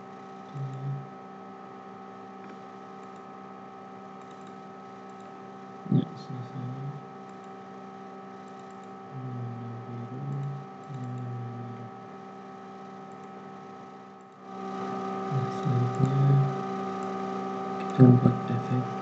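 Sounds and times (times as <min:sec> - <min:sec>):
electrical hum: 0:00.0 - 0:19.0
computer keyboard clicks: 0:02.4 - 0:03.3, 0:04.2 - 0:05.4, 0:07.2 - 0:07.6, 0:08.4 - 0:09.0, 0:13.0 - 0:13.4.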